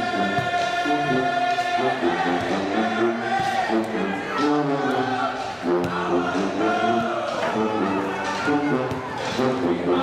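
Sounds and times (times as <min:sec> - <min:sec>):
group of voices singing: 0:00.0 - 0:10.0.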